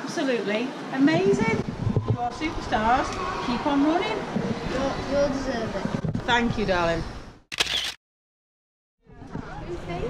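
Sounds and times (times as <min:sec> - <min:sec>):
camera shutter click: 0:07.5 - 0:08.0.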